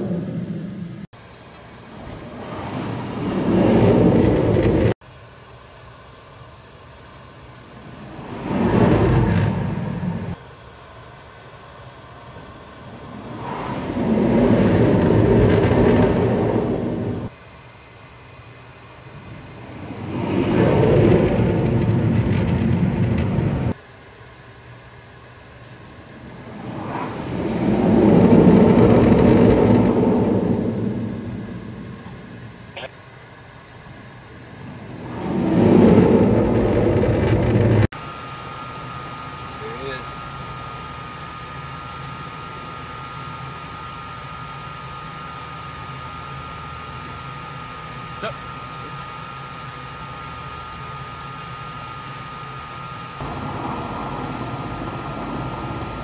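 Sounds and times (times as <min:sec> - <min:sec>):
jet engines at full power: 0:00.0 - 0:56.0
low steady hum: 0:00.0 - 0:56.0.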